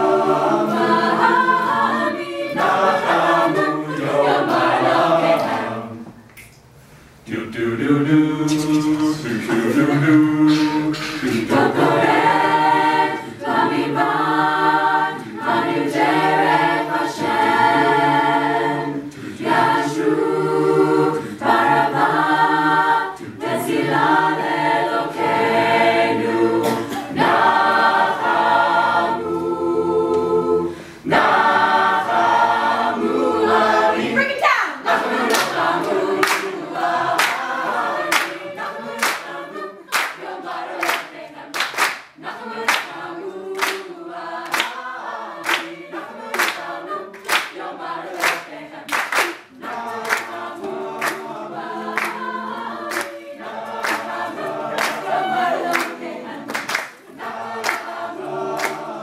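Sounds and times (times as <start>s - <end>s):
a cappella group singing: 0.0s - 6.3s, 7.1s - 59.0s
hand claps: 10.5s - 11.6s, 35.3s - 36.6s, 37.2s - 37.5s, 38.1s - 38.4s, 39.0s - 44.8s, 45.4s - 51.3s, 51.9s - 53.2s, 53.8s - 57.9s, 58.6s - 58.9s.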